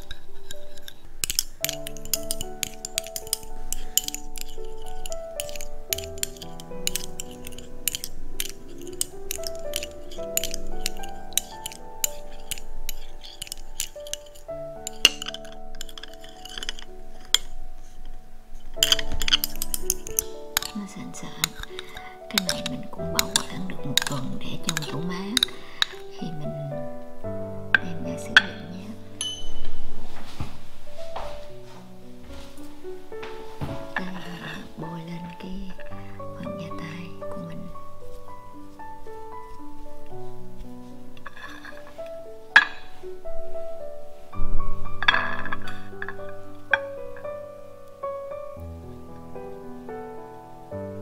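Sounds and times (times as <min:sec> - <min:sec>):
spoon clinking against bowl: 0:00.0 - 0:18.0, 0:18.8 - 0:26.4, 0:27.8 - 0:29.7
soft background music: 0:00.0 - 0:51.0.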